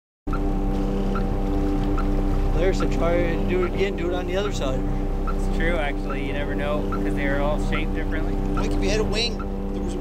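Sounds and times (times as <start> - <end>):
boat engine idling: 0.3 - 10.0.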